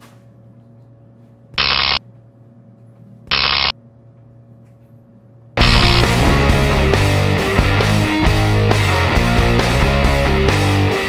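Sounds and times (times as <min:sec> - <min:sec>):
electrical hum: 0:00.0 - 0:09.9
short electric buzzes: 0:01.6 - 0:02.0, 0:03.3 - 0:03.7.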